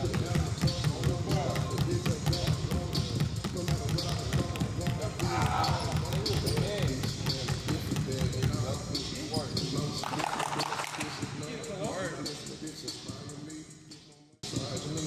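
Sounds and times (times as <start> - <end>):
basketballs dribbling on gym floor: 0.0 - 10.3
voices: 3.6 - 13.7.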